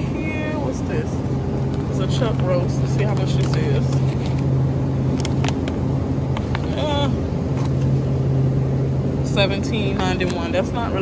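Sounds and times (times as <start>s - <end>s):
refrigerator case hum: 0.0s - 11.0s
plastic packaging rustling: 2.7s - 5.8s.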